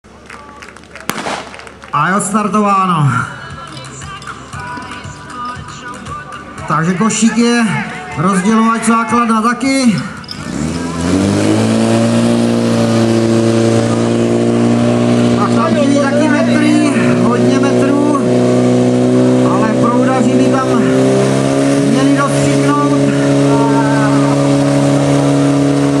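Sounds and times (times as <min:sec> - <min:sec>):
crowd voices: 0:00.0 - 0:25.2
starting shot crack: 0:00.8 - 0:02.0
voices shouting: 0:06.1 - 0:11.4
pump engine running at high revs: 0:10.1 - 0:26.0.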